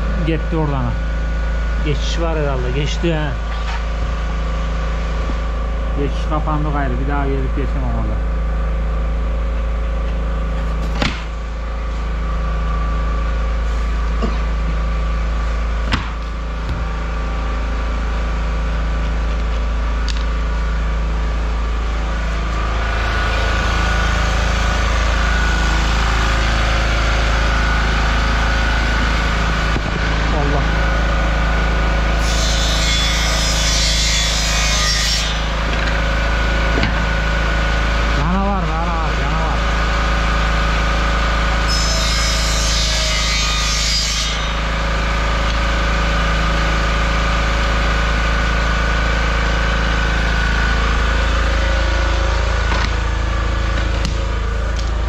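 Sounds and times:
portable generator running: 0.0s - 32.2s, 35.5s - 41.6s, 44.6s - 55.0s
power saw cutting flooring: 18.6s - 55.0s.

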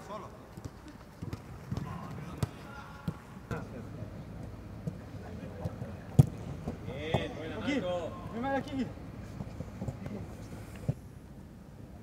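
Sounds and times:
open-air background noise: 0.0s - 12.0s.

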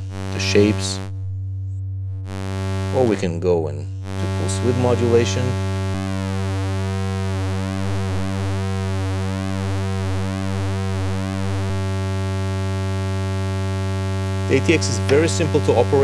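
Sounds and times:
oscillator buzzing drone: 0.0s - 16.0s.

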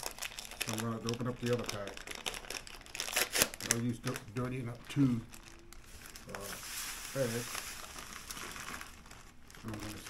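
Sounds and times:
plastic bag crinkling: 0.0s - 10.0s.

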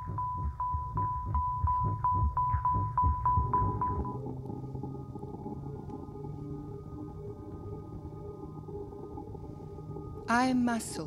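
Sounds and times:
high beep: 0.0s - 4.2s
low electronic hum: 0.0s - 11.0s.

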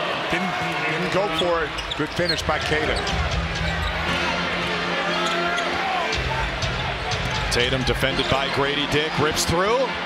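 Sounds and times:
arena music: 2.3s - 10.0s.

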